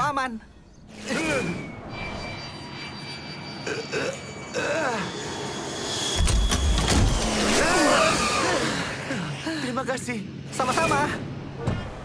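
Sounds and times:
gliding vocal cries: 0:00.9 - 0:06.0, 0:07.3 - 0:09.7
jet engine whine: 0:01.2 - 0:11.6.

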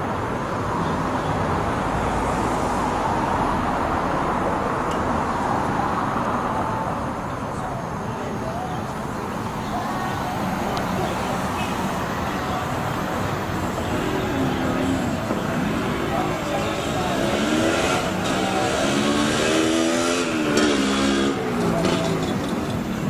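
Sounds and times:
street traffic: 0:00.0 - 0:23.0
motor vehicle engine passing: 0:12.4 - 0:23.0.

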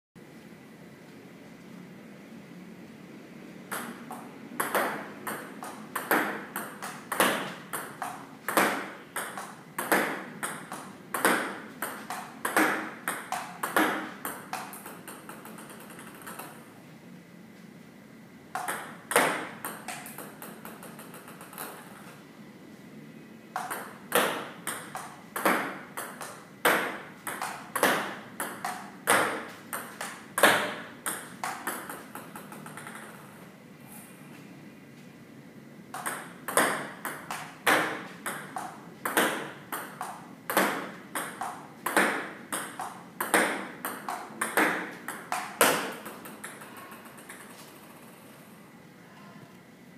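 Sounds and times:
table tennis ball clicking: 0:03.7 - 0:16.6, 0:18.6 - 0:22.0, 0:23.6 - 0:33.3, 0:35.9 - 0:48.2.

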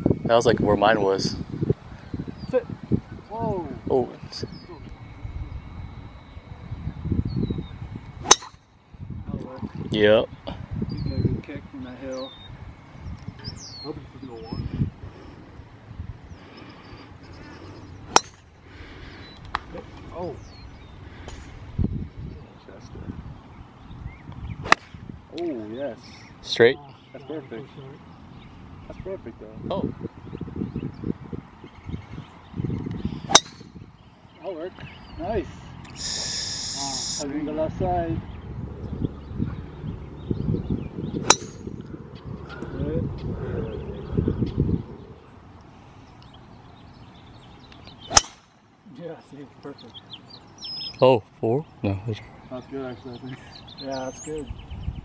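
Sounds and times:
golf club striking ball: 0:08.2 - 0:08.7, 0:18.1 - 0:18.6, 0:24.6 - 0:25.0, 0:33.3 - 0:33.7, 0:41.2 - 0:41.8, 0:48.0 - 0:48.5.

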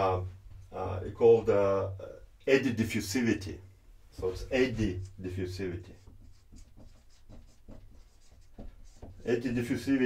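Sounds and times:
marker writing on whiteboard: 0:04.2 - 0:09.6.

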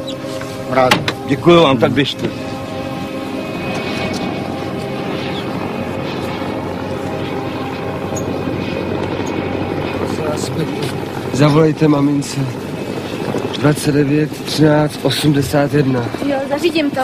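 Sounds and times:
engines droning: 0:00.0 - 0:17.0.

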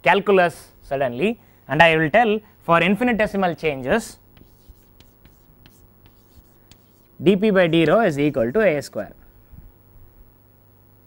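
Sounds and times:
chalk scratching on chalkboard: 0:03.8 - 0:07.2.

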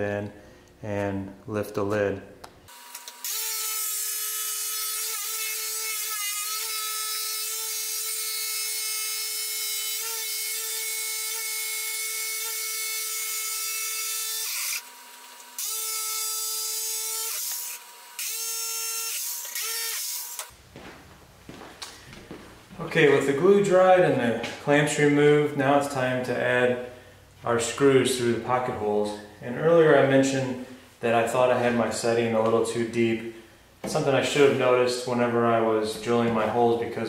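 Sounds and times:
electric jigsaw cutting: 0:02.7 - 0:20.5.

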